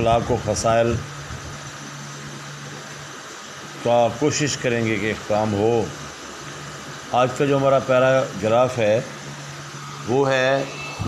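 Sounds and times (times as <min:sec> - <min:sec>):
man speaking: 0:00.0 - 0:01.1, 0:03.8 - 0:06.0, 0:07.1 - 0:09.1, 0:10.0 - 0:11.0
background hiss: 0:00.0 - 0:11.0
low hum: 0:00.0 - 0:11.0.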